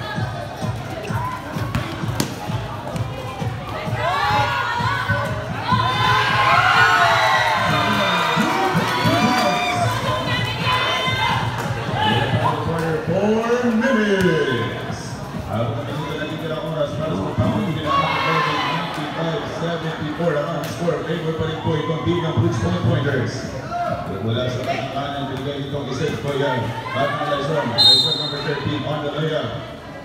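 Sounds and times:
spectators shouting and cheering: 0.0s - 15.2s, 17.1s - 24.2s
basketball bouncing on court: 1.0s - 5.8s.

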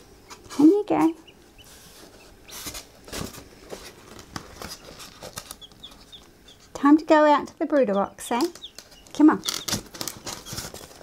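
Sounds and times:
chicks peeping: 0.2s - 11.0s
rustling and light knocks: 0.3s - 6.9s, 7.7s - 11.0s.

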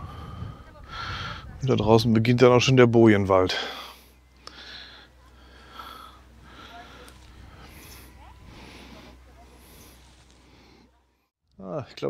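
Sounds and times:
low steady rumble: 0.0s - 11.3s
soft rustling: 6.7s - 11.3s.

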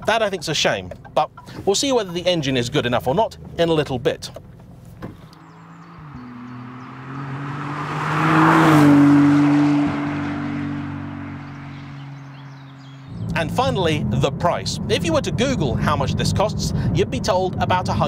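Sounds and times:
sports car driving past: 5.3s - 14.9s.

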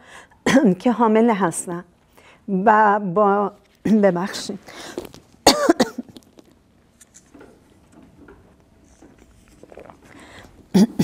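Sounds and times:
woman coughing: 5.4s - 6.2s, 10.7s - 11.0s.

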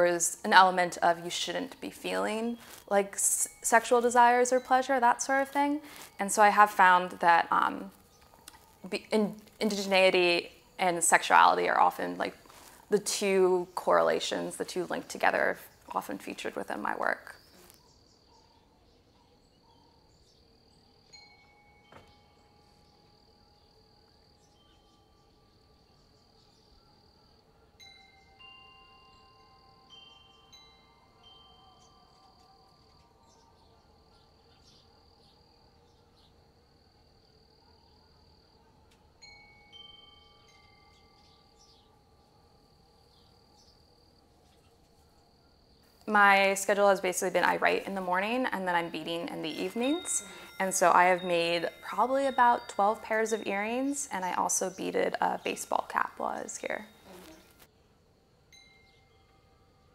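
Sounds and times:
faint wind chimes ringing: 0.0s - 8.9s, 20.0s - 33.6s, 39.1s - 43.7s, 46.1s - 57.7s, 58.4s - 59.9s
high insect drone: 18.9s - 59.9s.

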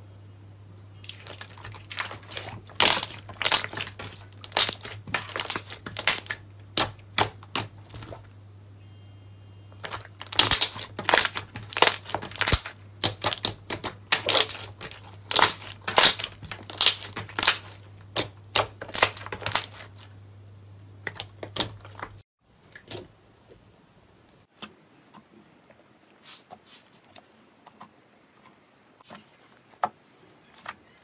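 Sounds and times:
slime squeezed by hand crackling: 1.0s - 8.3s, 9.8s - 20.1s.

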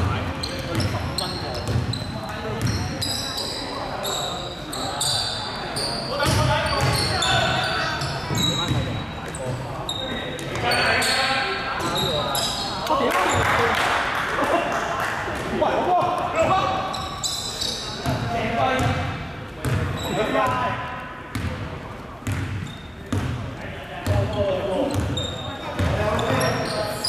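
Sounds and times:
sneaker squeaks: 0.0s - 13.6s, 16.4s - 20.7s, 22.2s - 23.4s, 24.0s - 27.0s.

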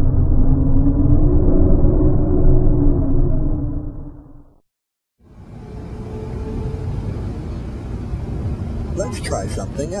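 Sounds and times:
loud low rumble: 0.0s - 4.6s.

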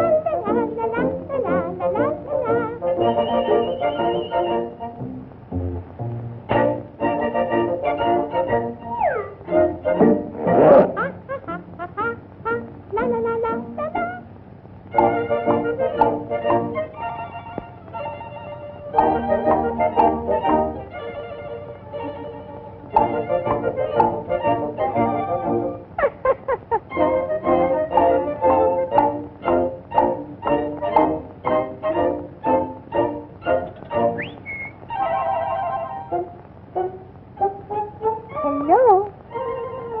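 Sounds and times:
jazz band music: 0.0s - 14.2s, 14.9s - 26.0s, 26.9s - 40.0s
falling sliding tone: 8.8s - 11.2s.

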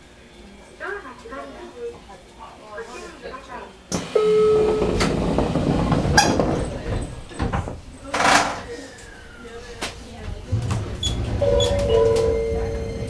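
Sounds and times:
train doors sliding and knocking: 3.9s - 8.5s, 9.8s - 13.0s
door warning tone: 4.1s - 6.4s, 10.5s - 13.0s.

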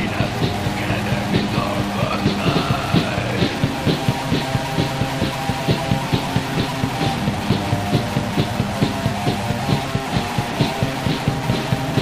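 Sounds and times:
drums keeping steady beat: 0.0s - 12.0s
electric guitar chords: 0.0s - 12.0s.

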